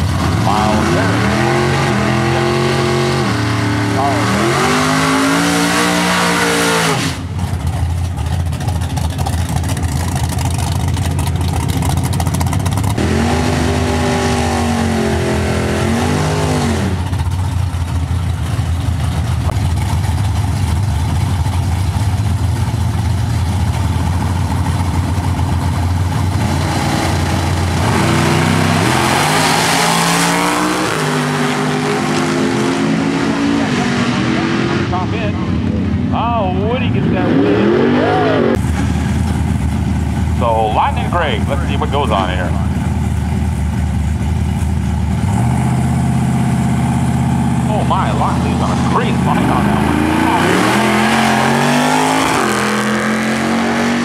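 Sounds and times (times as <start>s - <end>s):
drag racing car engines revving: 0.0s - 54.0s.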